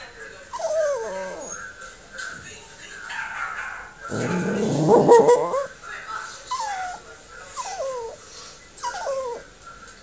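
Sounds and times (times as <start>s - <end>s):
dogs on video: 0.0s - 10.0s
dog whining: 0.5s - 1.7s, 4.1s - 5.7s, 6.5s - 7.0s, 7.6s - 8.2s, 8.8s - 9.5s.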